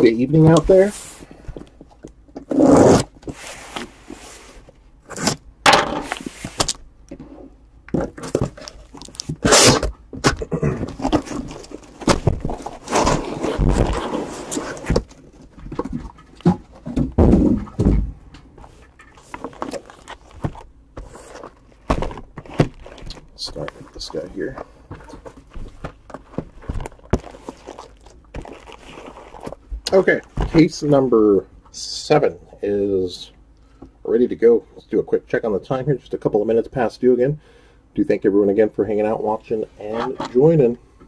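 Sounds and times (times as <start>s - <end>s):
cardboard box scraping and rustling: 11.0s - 15.1s, 19.2s - 29.6s.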